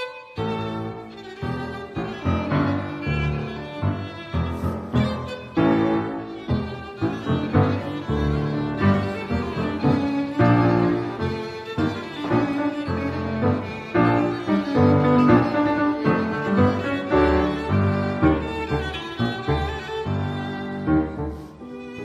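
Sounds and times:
bowed violin melody: 0.0 - 22.0
piano accompaniment: 0.0 - 22.0.

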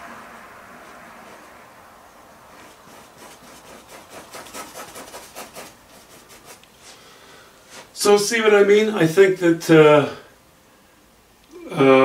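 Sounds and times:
paintbrush scrubbing on canvas: 2.5 - 7.0.

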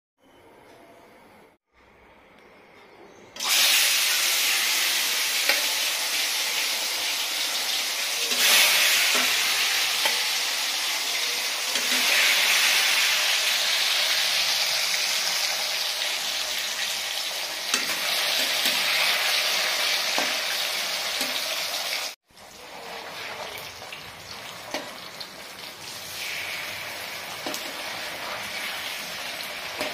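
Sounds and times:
fish sizzling in hot oil: 3.4 - 29.9.

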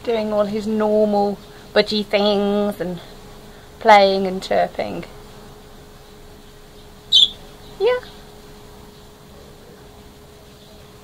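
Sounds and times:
parrot chirp: 6.8 - 8.2.

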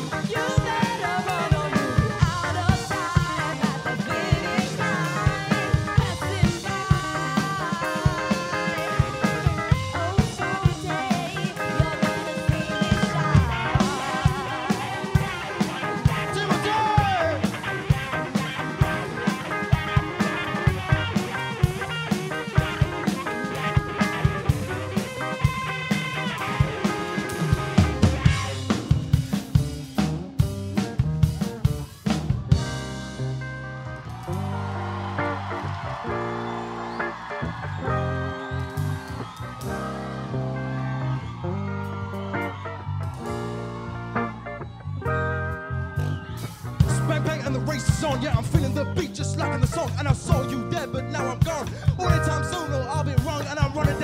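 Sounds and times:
drum kit: 0.0 - 54.0
rock band playing: 0.0 - 54.0.

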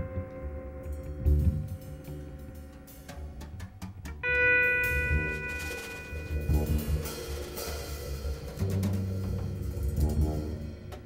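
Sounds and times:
double bass notes: 0.0 - 11.0
loose drum strokes: 0.0 - 11.0
ringing electric guitar note: 4.2 - 8.7.

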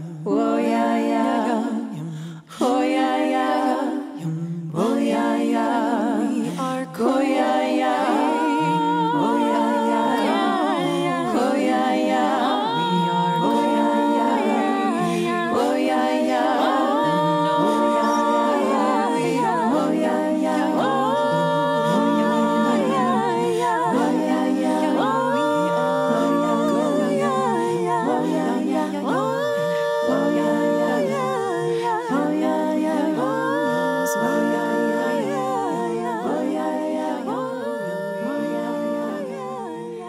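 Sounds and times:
higher wavering vocal line: 0.0 - 40.0
unaccompanied wordless singing: 0.0 - 40.0
voices humming in harmony: 7.0 - 39.8.

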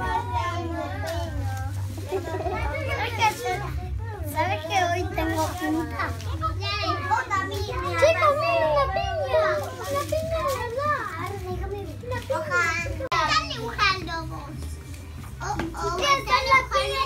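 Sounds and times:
children talking and calling out: 0.0 - 17.0.

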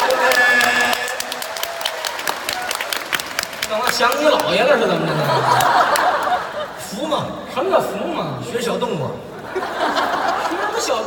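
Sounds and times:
audience applauding: 0.0 - 6.5.

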